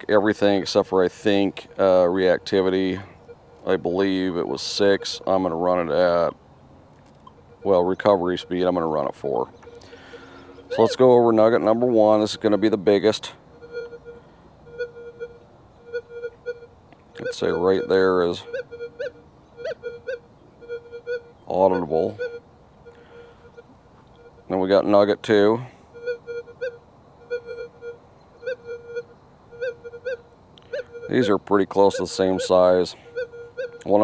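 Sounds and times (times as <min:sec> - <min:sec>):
metal detector tone: 0:00.0 - 0:06.4, 0:07.1 - 0:34.0
metal detector short beeps: 0:07.2 - 0:24.6, 0:25.9 - 0:34.0.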